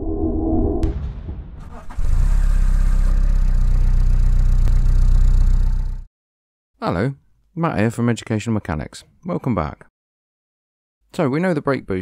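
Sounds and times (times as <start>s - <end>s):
car engine running: 1.9s - 6.1s.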